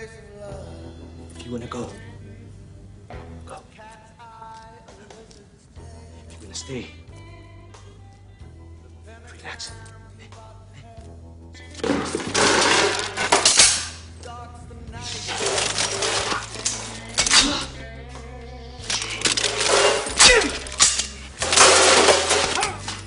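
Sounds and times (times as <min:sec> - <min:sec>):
low music score: 0:00.0 - 0:12.2
furniture crashing and smashing: 0:11.8 - 0:14.0, 0:15.1 - 0:17.6, 0:18.9 - 0:23.0.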